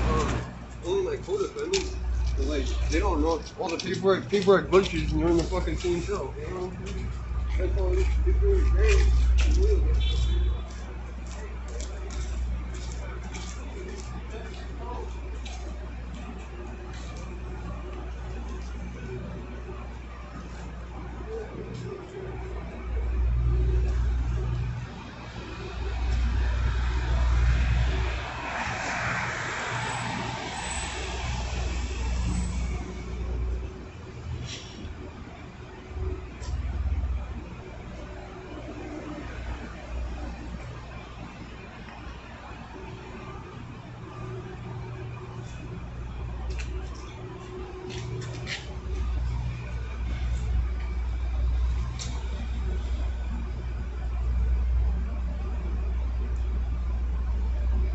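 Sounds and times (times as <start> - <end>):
engine running: 0.0 - 57.9
low traffic rumble: 0.0 - 57.9
car passing: 24.9 - 34.0.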